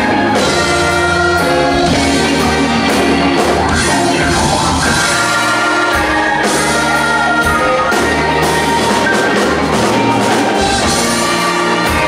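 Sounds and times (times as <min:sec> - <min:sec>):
bass: 0:00.0 - 0:12.0
drum kit beating: 0:00.0 - 0:12.0
electric guitar: 0:00.0 - 0:12.0
sustained organ chords: 0:00.0 - 0:12.0.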